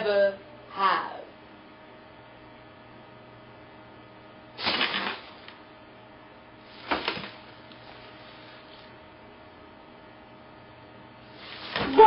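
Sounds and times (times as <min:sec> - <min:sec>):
plastic bag rustling: 0:04.6 - 0:05.4, 0:11.3 - 0:12.0.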